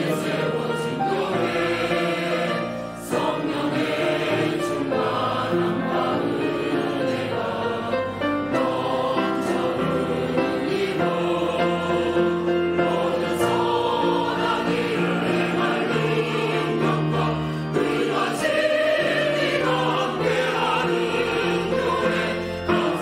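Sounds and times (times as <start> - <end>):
choir singing a hymn: 0.0 - 23.0.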